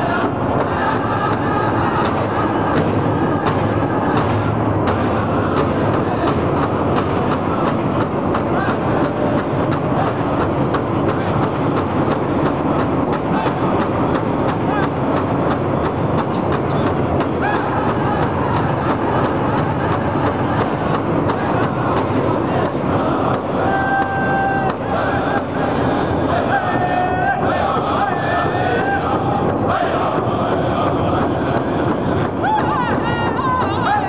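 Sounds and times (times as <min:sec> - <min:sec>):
men singing: 0:00.0 - 0:10.4, 0:16.6 - 0:34.0
large drum beating: 0:00.0 - 0:34.0.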